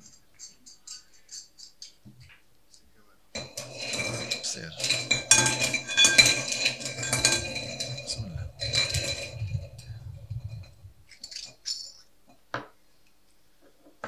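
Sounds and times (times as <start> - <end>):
balls rattling in glass bowl: 3.4 - 12.0.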